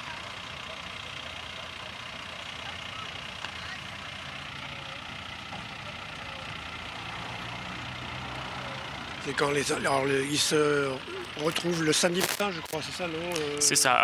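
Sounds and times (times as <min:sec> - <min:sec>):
fire engine motor idling: 0:00.0 - 0:14.0.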